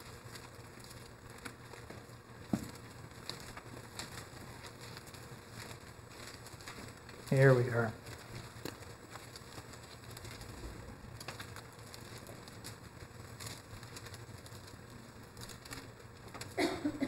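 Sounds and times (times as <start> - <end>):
paper rustles and ticks: 0.0 - 17.0.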